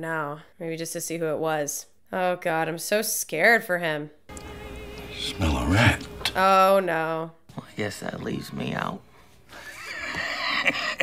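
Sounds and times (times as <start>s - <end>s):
man laughing: 9.6s - 11.0s.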